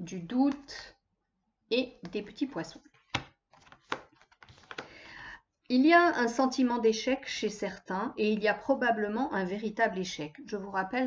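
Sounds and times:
cards rustling: 0:02.9 - 0:05.0
cards tapping on table: 0:03.1 - 0:04.9.

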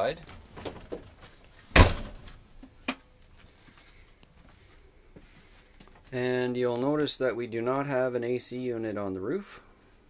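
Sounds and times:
heavy thump: 0:01.7 - 0:02.2.

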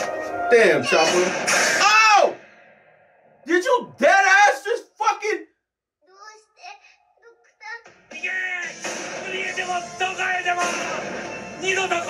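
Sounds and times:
person speaking: 0:00.5 - 0:01.3.

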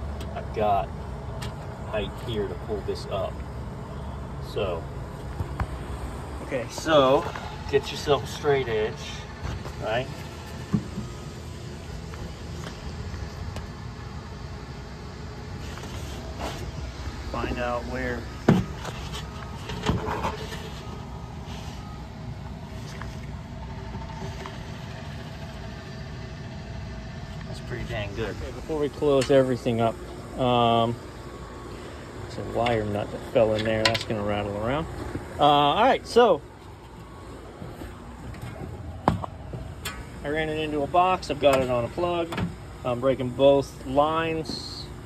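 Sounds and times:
low steady background hum: 0:00.0 - 0:45.0
low traffic rumble: 0:00.0 - 0:45.0.

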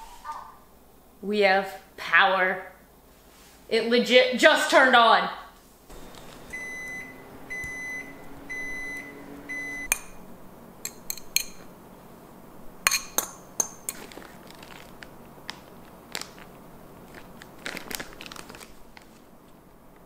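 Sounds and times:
appliance beeps: 0:05.9 - 0:10.2
low hum: 0:05.9 - 0:13.2
spoon clinking ceramic bowl: 0:10.9 - 0:11.6, 0:12.9 - 0:14.0.

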